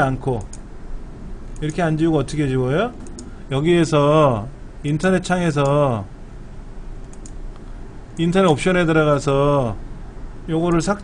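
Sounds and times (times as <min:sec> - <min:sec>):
steady low hum: 0:00.0 - 0:11.0
computer mouse clicks: 0:03.0 - 0:03.3, 0:07.0 - 0:07.7.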